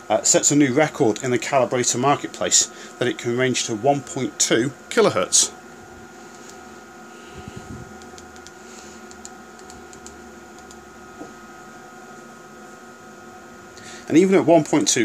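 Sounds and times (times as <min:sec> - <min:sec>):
keypad buttons clicking: 0:09.1 - 0:10.8.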